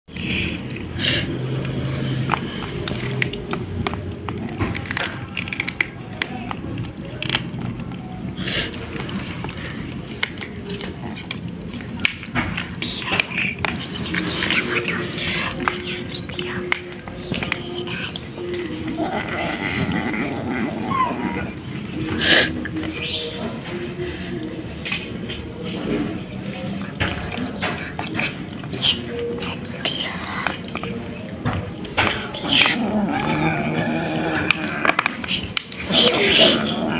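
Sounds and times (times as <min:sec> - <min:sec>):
kittens crunching fried fish: 0:00.1 - 0:36.9
low background murmur: 0:00.1 - 0:36.9.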